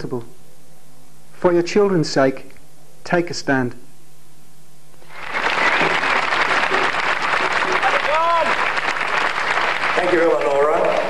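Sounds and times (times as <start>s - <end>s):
crowd applauding: 5.0s - 11.0s.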